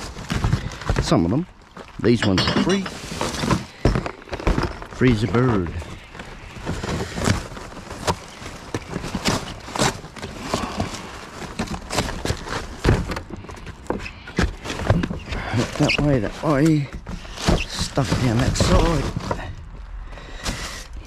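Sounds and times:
cardboard tearing and crackling: 0:00.0 - 0:01.8, 0:02.9 - 0:21.0
rubbish rustling in a plastic bin: 0:00.0 - 0:21.0.

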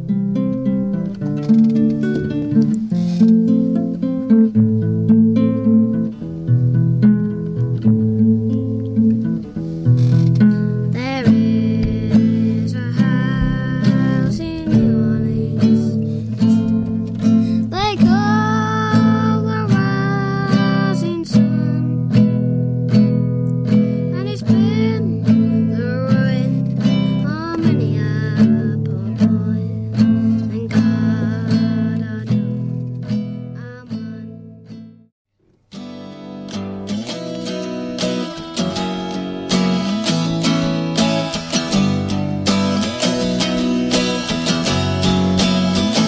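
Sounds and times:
held melody line: 0:00.0 - 0:34.8, 0:35.8 - 0:46.0
acoustic guitar strumming chords: 0:00.0 - 0:46.0.

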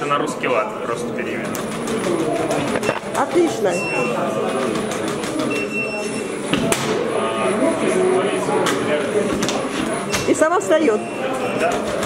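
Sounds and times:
chatter of voices in a hall: 0:00.0 - 0:12.0.

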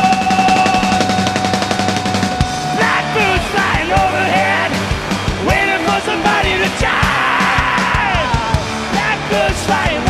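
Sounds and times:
bass: 0:00.0 - 0:10.0
drums: 0:00.0 - 0:10.0
electric guitars: 0:00.0 - 0:10.0.

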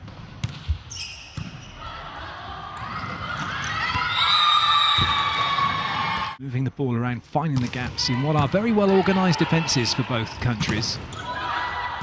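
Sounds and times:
volleyball hits: 0:04.8 - 0:06.4.

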